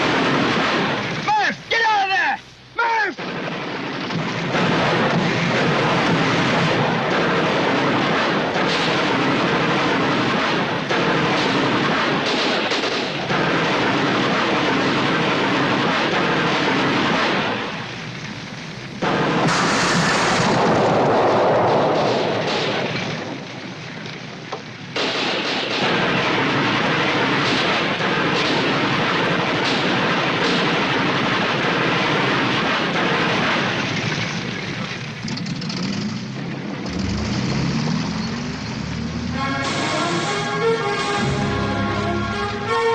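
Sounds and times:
explosions: 0.0 - 2.2, 3.1 - 24.0, 25.0 - 35.2, 36.7 - 42.9
machine gun firing in bursts: 0.0 - 2.2, 3.1 - 23.8, 24.9 - 36.3
battle din: 1.2 - 3.3, 39.4 - 42.9
musical swell: 38.8 - 42.9.

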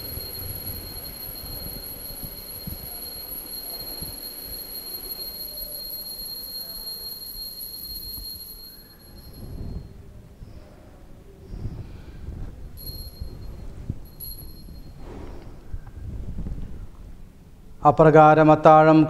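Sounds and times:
altar bell ringing: 0.0 - 10.0, 12.8 - 15.2.

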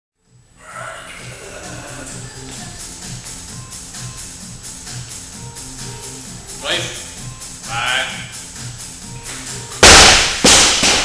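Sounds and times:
barbell crashing onto wooden platform: 9.8 - 11.0.

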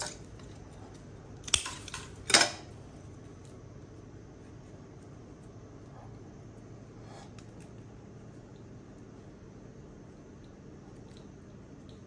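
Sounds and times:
scissors clattering down: 1.4 - 2.7.

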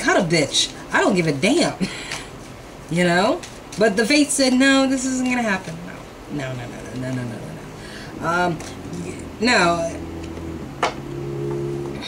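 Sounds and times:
soft background music: 6.3 - 12.0.

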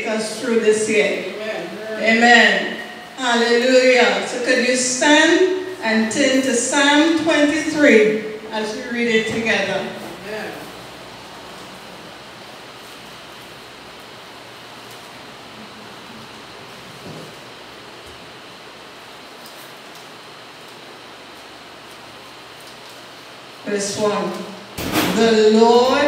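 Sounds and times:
steady background hiss: 0.0 - 26.0.

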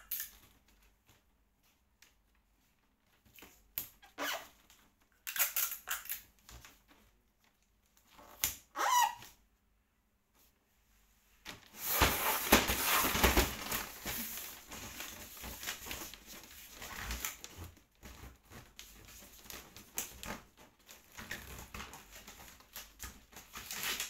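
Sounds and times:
wrapping paper crinkling: 11.7 - 24.0.

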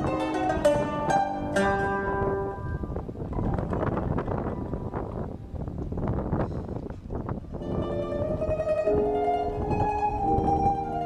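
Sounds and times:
plucked-string music: 0.0 - 11.0
wind buffeting microphone: 0.0 - 11.0.

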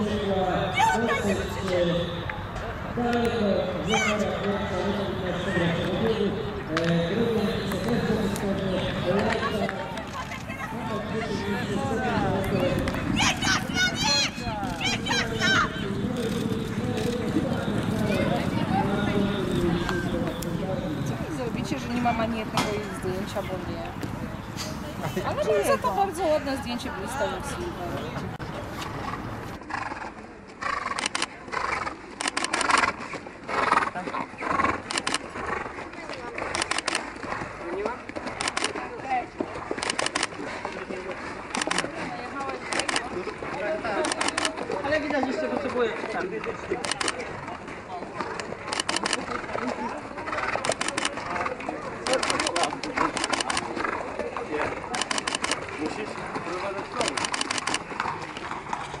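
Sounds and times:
voices: 0.0 - 29.0, 33.5 - 59.0
hooves clip-clopping on a path: 28.8 - 59.0.

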